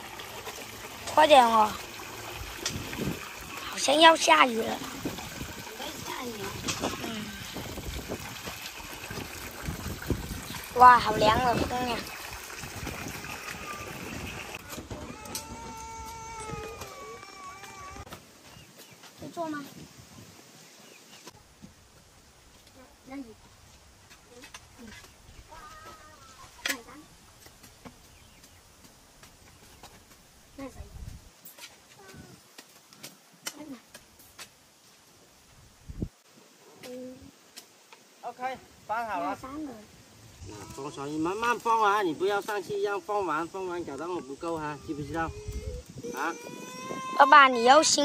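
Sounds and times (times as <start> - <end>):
water trickling from tap: 0.0 - 17.9
clothes scrubbed in soapy water: 0.0 - 18.0
water splashing and sloshing: 0.0 - 18.1
young child vocalizing: 25.5 - 26.5, 44.6 - 47.9.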